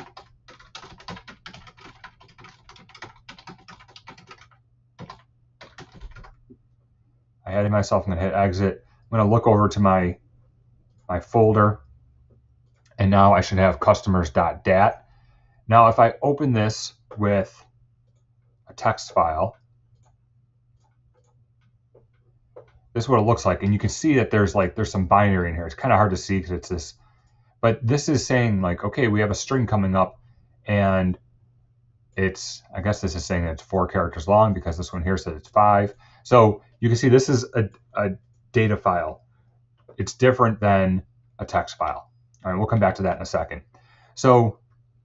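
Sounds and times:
typing on computer keyboard: 0.0 - 6.4
faint low hum: 0.0 - 45.0
computer mouse clicks: 19.5 - 22.9.

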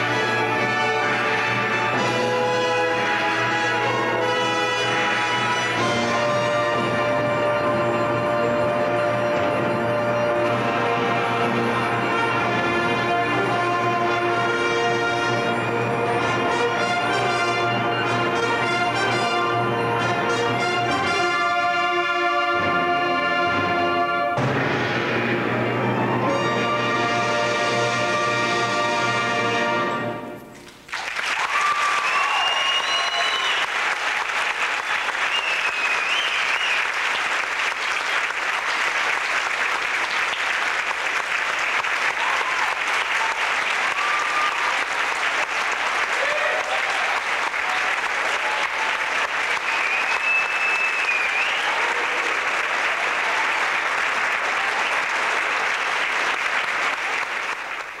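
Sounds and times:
audience applause: 0.0 - 6.8, 30.7 - 58.0
cheers and whistles: 31.2 - 34.1, 34.9 - 37.2, 42.0 - 45.5, 46.1 - 53.8.

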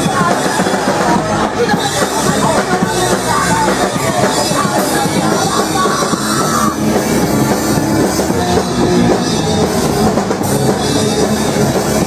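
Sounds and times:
drum kit and cymbals: 0.0 - 12.0
punk rock band playing live: 0.0 - 12.0.

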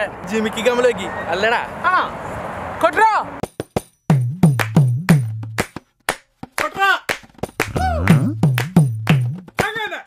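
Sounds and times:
bass beat: 4.1 - 5.8, 7.3 - 9.6
gliding sung notes: 7.7 - 8.5.

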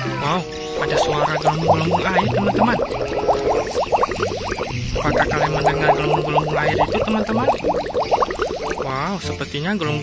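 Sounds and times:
cartoon bubbling water bloops: 0.8 - 9.0.

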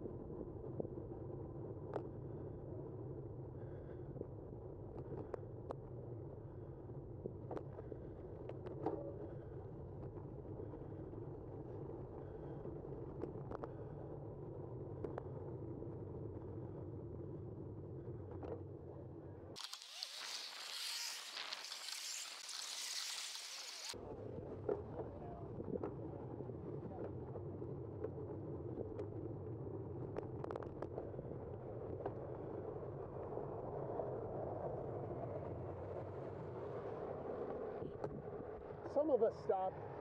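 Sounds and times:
wind and road rumble: 0.0 - 40.0
bright hiss: 19.6 - 24.0.

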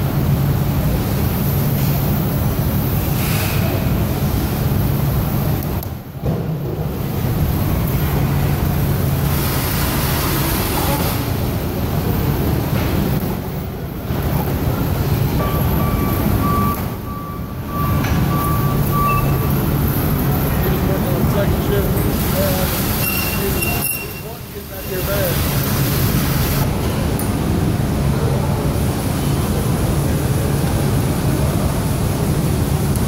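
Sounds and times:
warehouse noise: 0.0 - 32.9
forklift engine humming: 7.0 - 26.7
short high beeps: 15.4 - 19.7, 23.0 - 24.3.

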